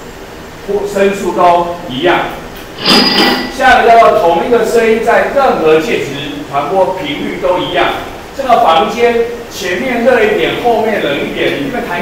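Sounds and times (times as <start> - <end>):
man lecturing: 0.7 - 2.4, 3.5 - 12.0
sharp clink with ring: 2.8 - 3.6.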